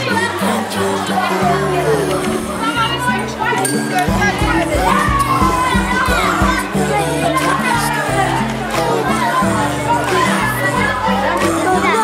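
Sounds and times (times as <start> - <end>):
children chattering: 0.0 - 12.0
music with held bass notes: 0.0 - 12.0.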